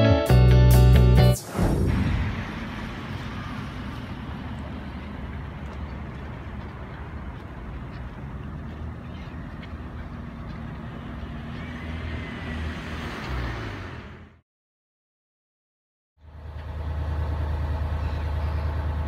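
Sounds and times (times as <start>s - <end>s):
distant road traffic rumble: 1.4s - 14.4s, 16.2s - 19.0s
faint gull calls: 18.0s - 18.8s.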